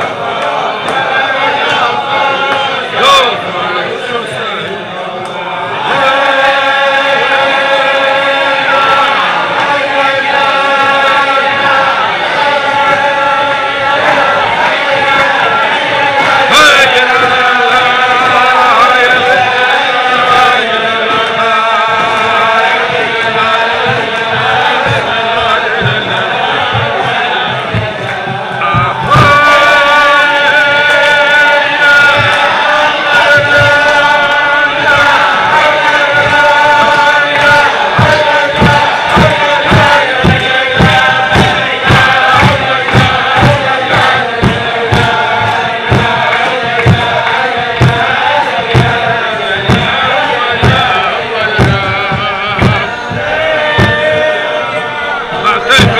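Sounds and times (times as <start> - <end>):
men singing together: 0.0 - 55.9
steady thumping beat: 5.2 - 55.9.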